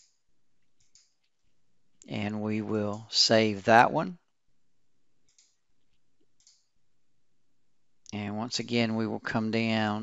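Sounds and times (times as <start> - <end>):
faint computer mouse clicks: 0.8 - 1.4, 5.2 - 6.7.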